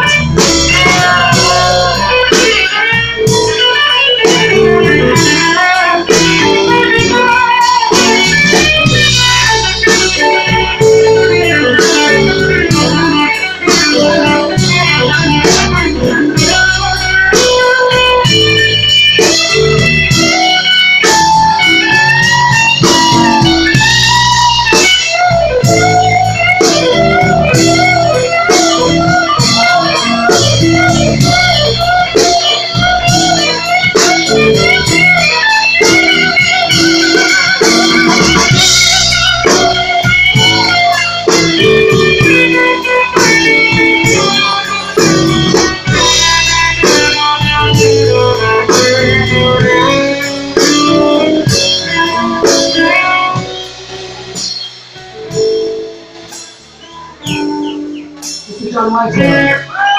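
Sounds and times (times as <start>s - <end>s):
electric guitar lead: 0.0s - 59.9s
live blues band: 0.0s - 59.9s.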